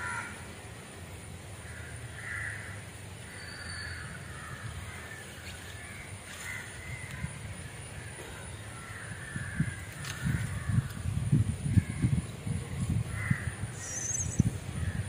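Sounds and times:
crows cawing: 0.0 - 0.4, 1.6 - 7.4, 8.0 - 11.0, 13.1 - 13.6.

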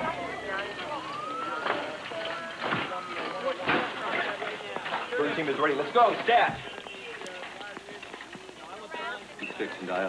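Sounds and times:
voices: 0.0 - 10.0
hurried footsteps: 1.6 - 9.4.

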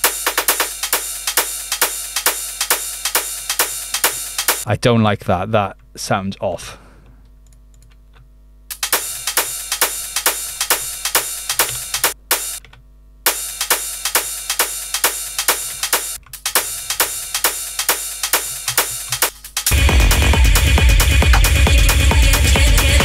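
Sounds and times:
sharp percussive hits: 0.0 - 4.7, 8.7 - 12.6, 13.3 - 23.0
techno track with heavy bass: 13.7 - 23.0.

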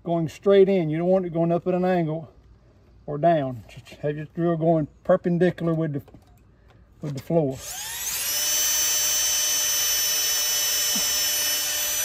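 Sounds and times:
cordless drill motor whine: 7.6 - 12.0.

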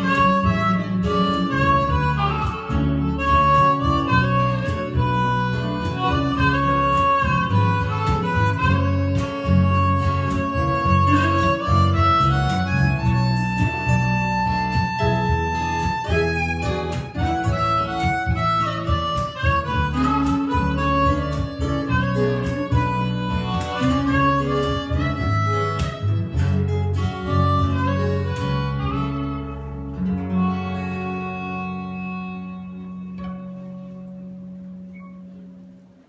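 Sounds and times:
harmonica: 0.0 - 34.2
strummed acoustic guitars: 0.0 - 36.0.

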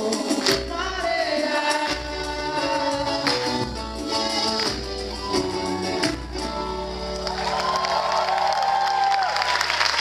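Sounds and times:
samba band playing: 0.0 - 8.5
audience applause and cheering: 4.1 - 10.0.

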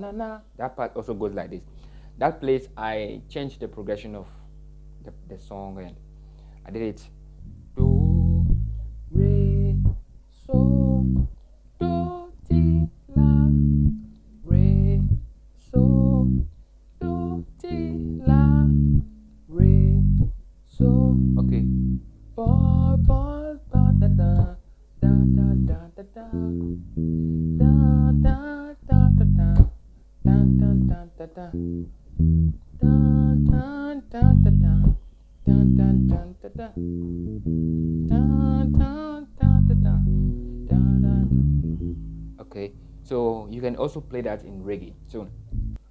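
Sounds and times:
electric bass reggae bassline: 6.7 - 45.9.

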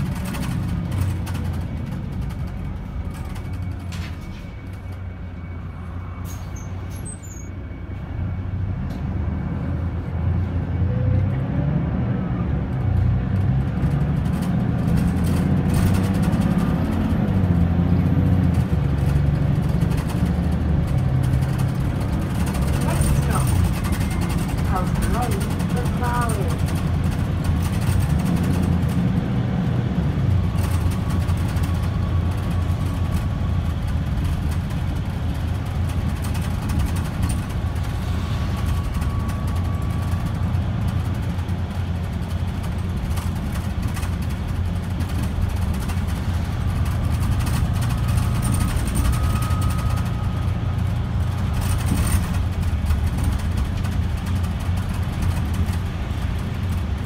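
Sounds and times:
bus engine and road drone: 0.0 - 57.0.

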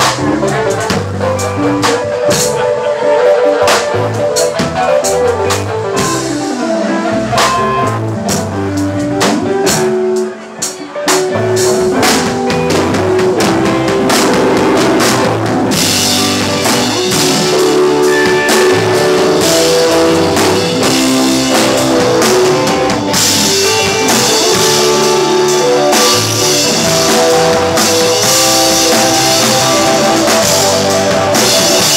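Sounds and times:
live rock band playing: 0.0 - 31.9.

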